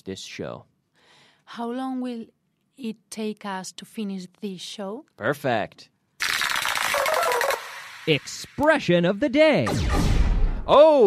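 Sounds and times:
rapid rattling burst with tones: 6.2s - 8.4s.

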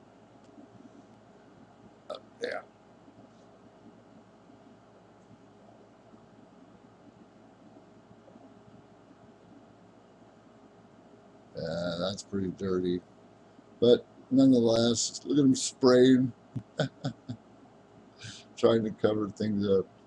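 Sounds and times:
recording hiss: 0.0s - 20.0s
man saying yeah: 2.4s - 2.6s, 11.6s - 13.0s, 13.8s - 17.3s.

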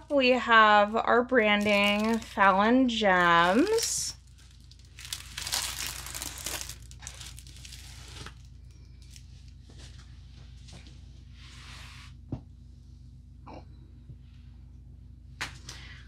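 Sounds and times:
plastic film crinkling: 1.4s - 9.6s.

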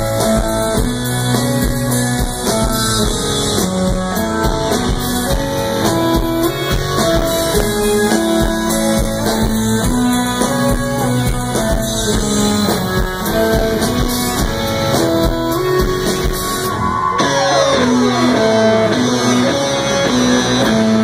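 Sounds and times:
live band playing: 0.0s - 21.0s.

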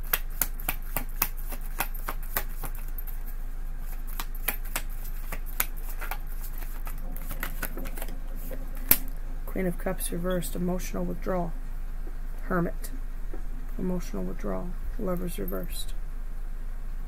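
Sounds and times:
cards being shuffled: 0.0s - 9.2s.

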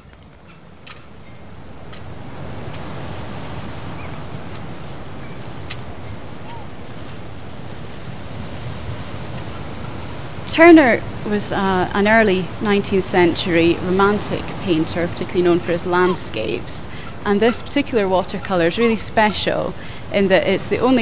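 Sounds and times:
waves breaking: 0.0s - 21.0s.

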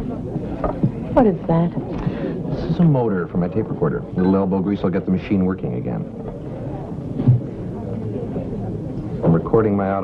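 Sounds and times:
low steady hum: 0.0s - 10.0s
murmur of voices: 0.0s - 10.0s.

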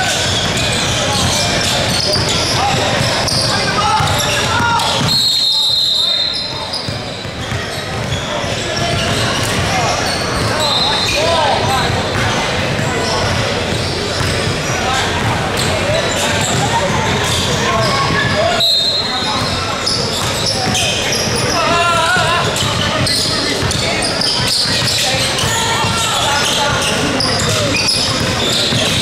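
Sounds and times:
basketball bouncing on court: 0.0s - 5.5s, 6.2s - 18.4s, 19.2s - 29.0s
sneakers squeaking: 0.0s - 29.0s.

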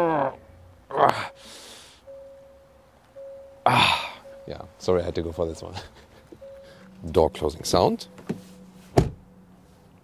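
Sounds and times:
car door thump: 8.2s - 9.2s.

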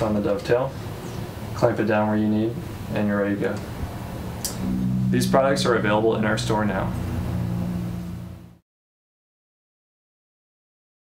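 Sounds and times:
background music with low notes: 4.6s - 8.4s.

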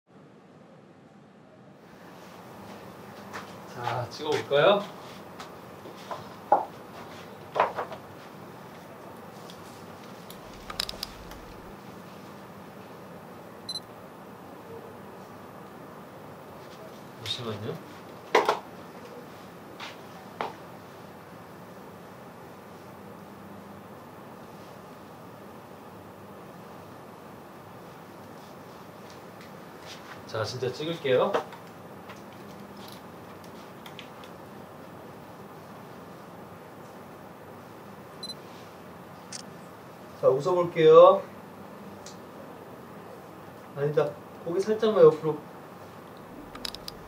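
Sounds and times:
camera autofocus beep: 13.7s - 13.9s.

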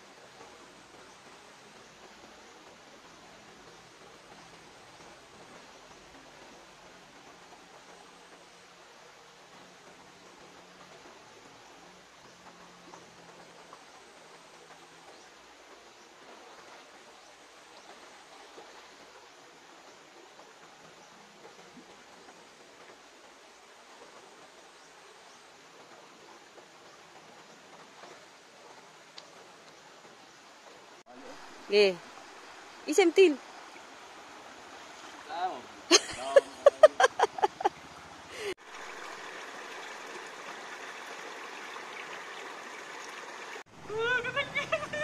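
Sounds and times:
river flowing over rocks: 0.0s - 45.0s.

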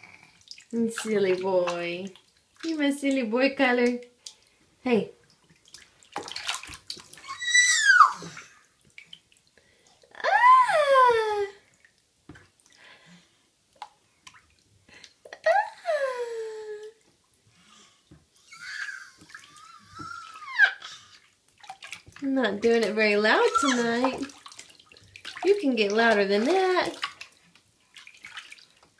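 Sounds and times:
bath water splashing: 0.0s - 28.9s
baby squealing: 7.2s - 8.6s, 18.4s - 21.1s, 23.5s - 24.0s.

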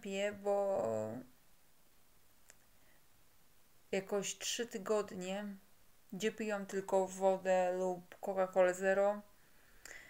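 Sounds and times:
faint click: 2.4s - 2.7s.

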